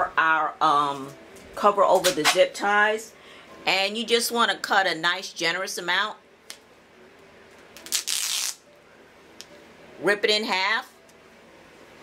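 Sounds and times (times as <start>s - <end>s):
duct tape crackles: 7.5s - 8.6s
duct tape ripping: 7.8s - 8.6s.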